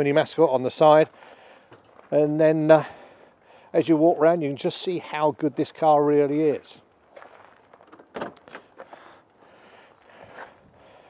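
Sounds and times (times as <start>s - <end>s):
footsteps on gravel: 0.8s - 2.6s, 7.0s - 10.9s
car door opening: 7.9s - 8.8s.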